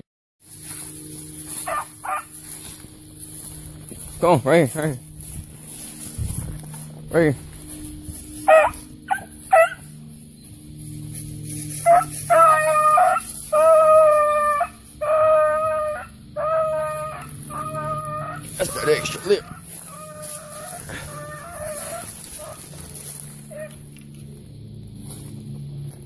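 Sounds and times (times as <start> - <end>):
hound baying: 1.4 - 2.8, 8.4 - 10.0, 11.6 - 24.0
dog yipping: 1.6 - 2.3, 8.5 - 9.8, 11.8 - 22.7, 23.5 - 23.8.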